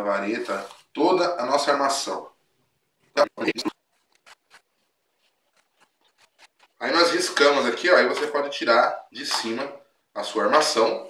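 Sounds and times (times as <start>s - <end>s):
marker scratching on cardboard: 3.6s - 6.8s.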